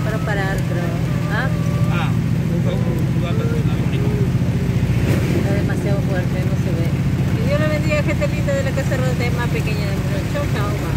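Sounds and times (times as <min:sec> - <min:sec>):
vehicle engine droning: 0:00.0 - 0:10.9
voices talking: 0:00.0 - 0:10.9.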